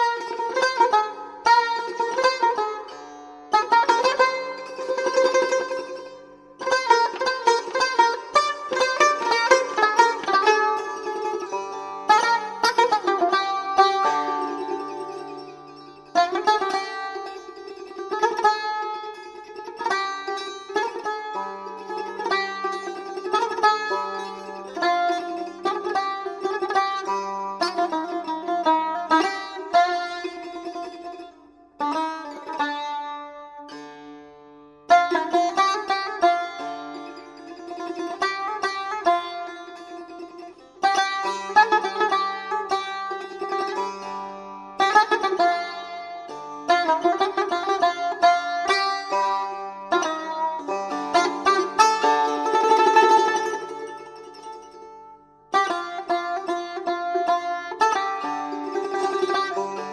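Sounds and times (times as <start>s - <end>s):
plucked lute melody: 0.0s - 59.9s.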